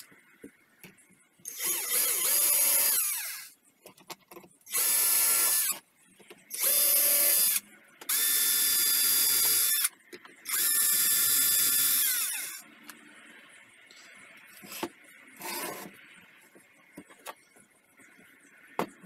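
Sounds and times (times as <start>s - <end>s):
cordless drill whining: 1.5s - 3.5s, 10.5s - 12.6s.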